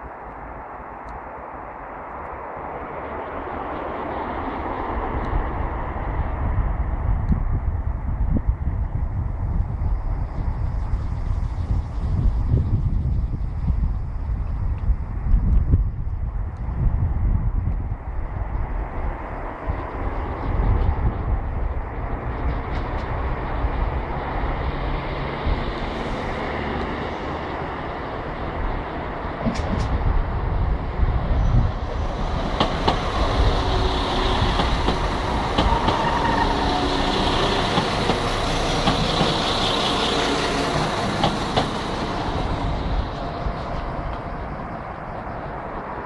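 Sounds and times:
diesel train rumble: 0.0 - 46.0
wheels hissing on rails: 22.5 - 46.0.

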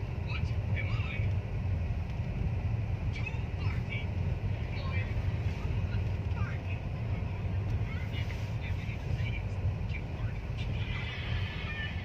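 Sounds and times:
car driving rumble: 0.0 - 12.0.

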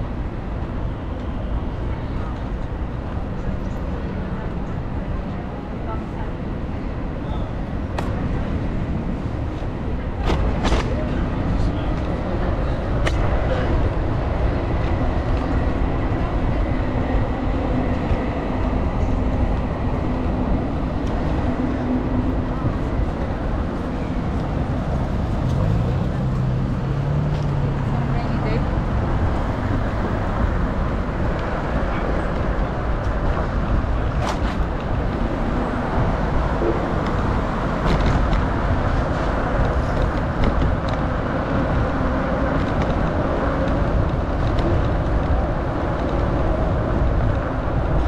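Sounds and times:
traffic rumble: 0.0 - 48.0
vehicle engine hum: 0.0 - 48.0
voices of passers-by: 0.0 - 48.0.

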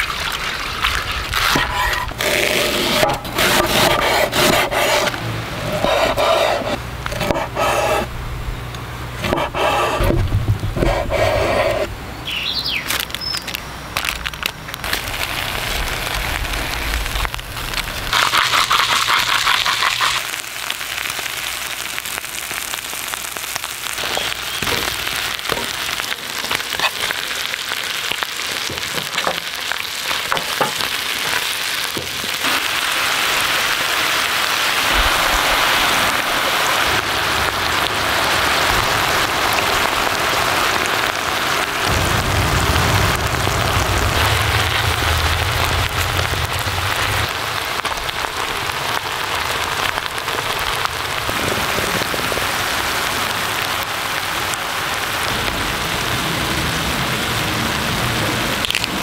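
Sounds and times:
fat popping and crackling: 12.8 - 32.9
low rumble: 14.8 - 18.2, 41.8 - 48.7
food sizzling in a pan: 14.9 - 51.3.

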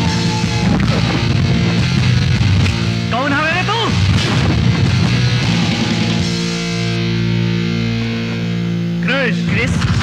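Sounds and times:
rock background music: 0.0 - 10.0
heavy boom: 4.0 - 6.4.

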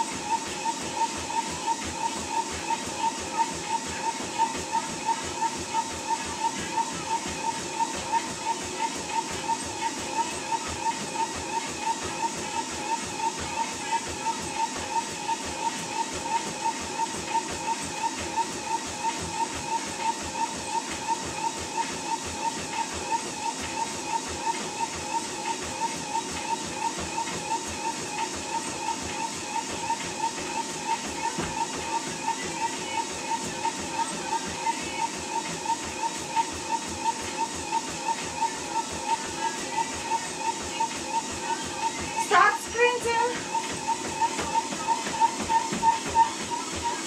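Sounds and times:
treadmill motor whine: 0.0 - 47.0
footfalls on treadmill belt: 0.1 - 47.0.

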